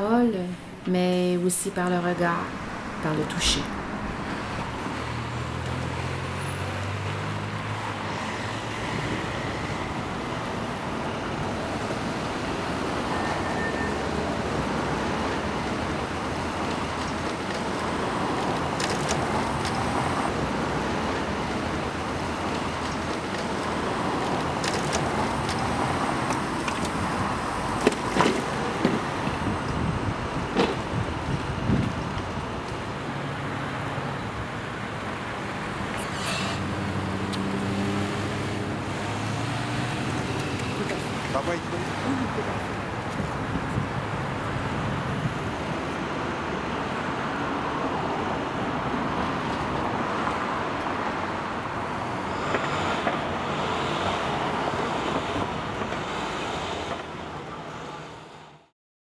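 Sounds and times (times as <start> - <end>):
city street traffic: 0.0 - 58.7.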